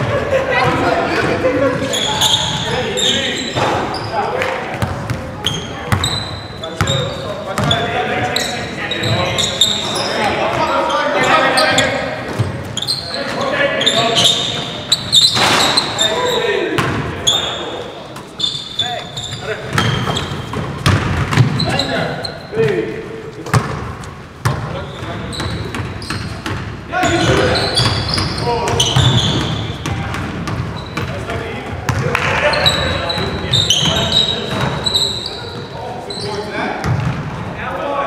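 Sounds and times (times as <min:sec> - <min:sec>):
players calling out: 0:00.0 - 0:36.8
basketball bouncing on hardwood: 0:19.7 - 0:21.6.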